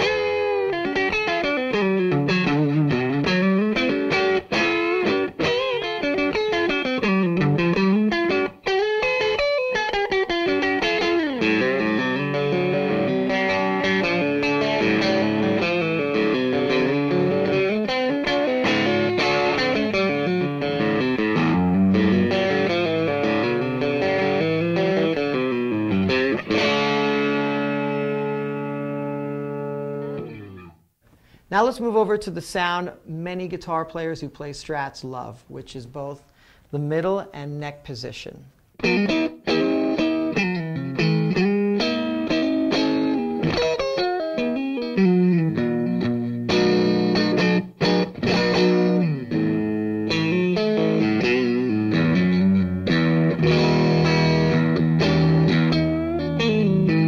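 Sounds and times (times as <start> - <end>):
electric guitar with slight overdrive: 0.0 - 31.4, 38.5 - 57.0.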